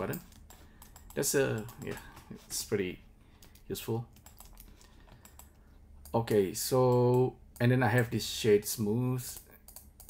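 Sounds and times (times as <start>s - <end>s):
computer keyboard and mouse clicking: 0.0s - 2.0s, 3.4s - 7.7s, 9.3s - 10.0s.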